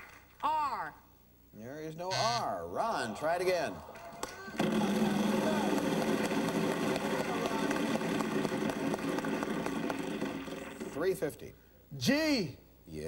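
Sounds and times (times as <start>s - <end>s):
crowd shouting: 3.0s - 9.8s.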